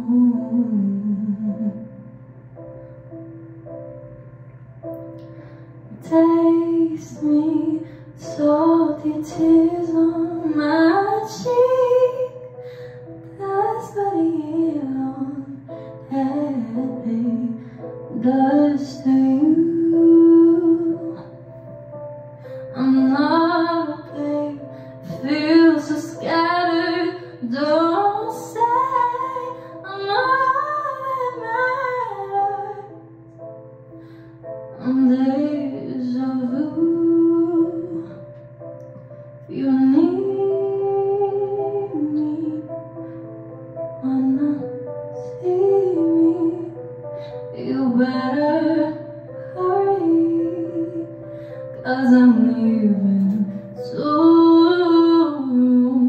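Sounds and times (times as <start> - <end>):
sustained instrumental chords: 0.0 - 54.7
woman singing into microphone: 22.7 - 33.0, 39.4 - 42.7, 44.0 - 56.0.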